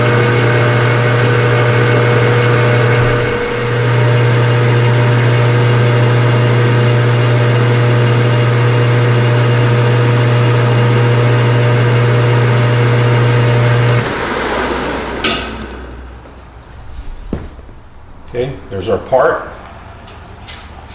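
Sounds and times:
metal lathe motor hum: 0.0s - 16.0s.

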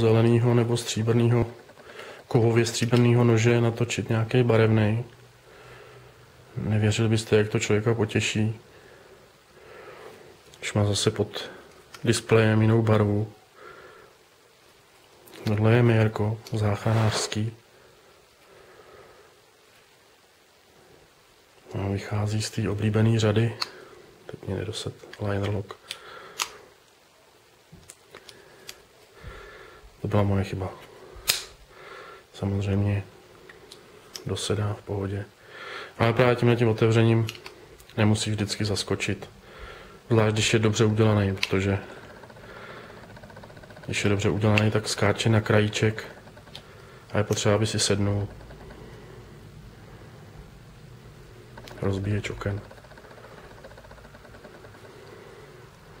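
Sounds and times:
faint background hiss: 0.0s - 56.0s.

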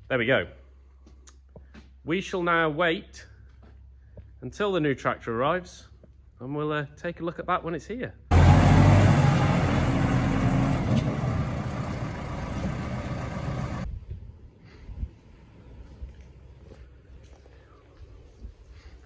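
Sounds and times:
vehicle engine running: 8.3s - 13.9s.

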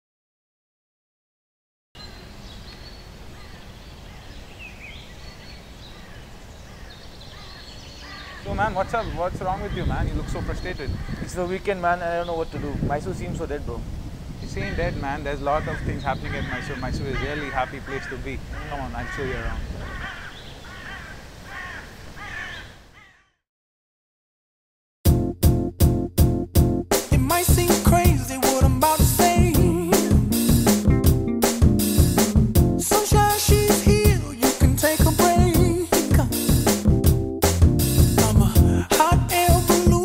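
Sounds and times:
rising and falling bird calls: 2.0s - 11.4s, 15.6s - 23.4s, 29.8s - 30.5s
birds chirping: 2.0s - 13.5s, 14.4s - 23.4s, 28.6s - 34.0s
crows cawing: 5.9s - 8.6s, 9.6s - 11.4s, 15.5s - 23.4s.

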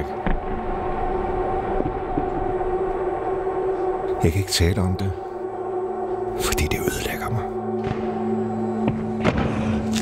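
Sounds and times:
dark sustained drone: 0.0s - 10.0s.

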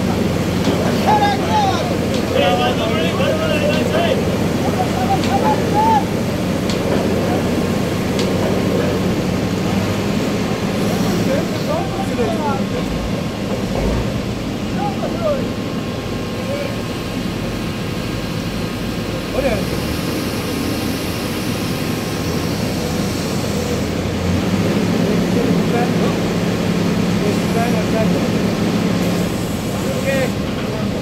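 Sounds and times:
engines and pumps droning: 0.0s - 31.0s
voices calling: 0.5s - 9.1s.

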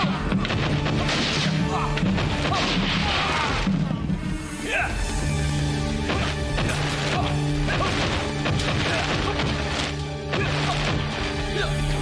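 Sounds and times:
punches and smacks: 0.0s - 3.8s, 6.0s - 11.6s
dramatic background music: 0.0s - 12.0s.

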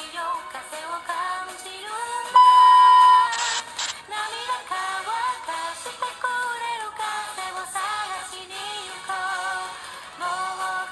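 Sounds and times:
high steady test tone beep: 2.4s - 3.9s
static hiss bursts: 3.0s - 4.4s.

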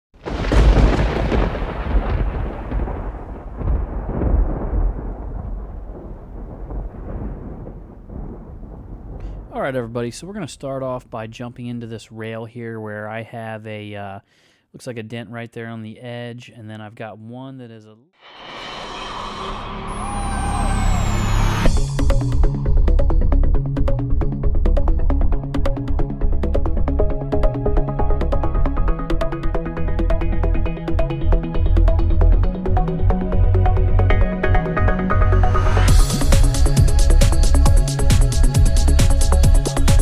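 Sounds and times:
thunder crash and rumble: 0.2s - 10.5s, 19.3s - 40.0s
rising whoosh: 18.2s - 22.5s
falling whistle: 18.8s - 21.8s
electronic music with a beat: 26.4s - 40.0s.

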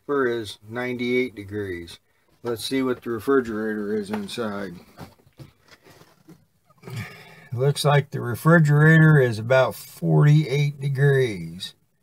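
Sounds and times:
faint knocks and rustles: 2.2s - 6.7s.

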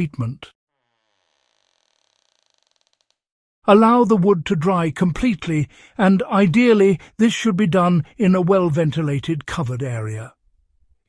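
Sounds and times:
narration voice: 0.0s - 0.5s, 3.7s - 10.4s.

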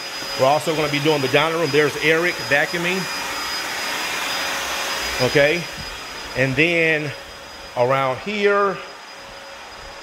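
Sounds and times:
vacuum cleaner running: 0.0s - 10.0s.

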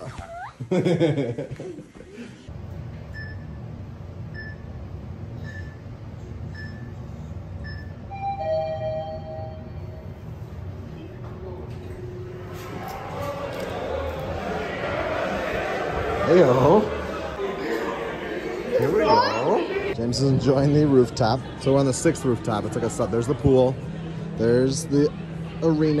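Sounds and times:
elevator hum: 2.5s - 26.0s
people talking: 10.8s - 26.0s.

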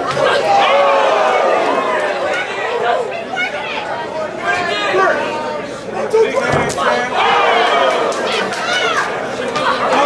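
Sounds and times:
crowd talking and shouting: 0.0s - 10.0s.

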